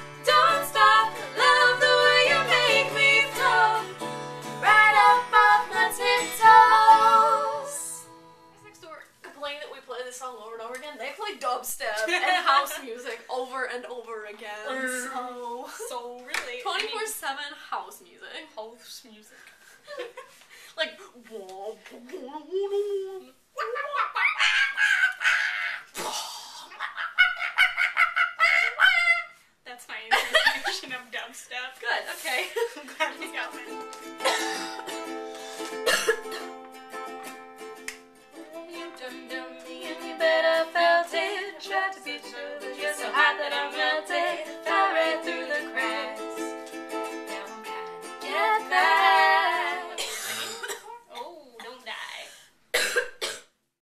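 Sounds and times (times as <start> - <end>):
woman's voice: 8.6 - 19.4, 29.7 - 33.7
women laughing and shrieking: 23.6 - 25.9, 26.7 - 29.4
coughs: 34.2 - 34.9, 35.7 - 36.6, 50.0 - 51.3, 52.7 - 53.6.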